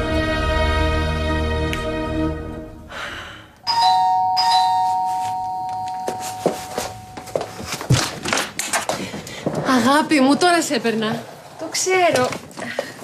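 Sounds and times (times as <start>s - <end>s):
two-tone doorbell chime: 3.7s - 7.5s.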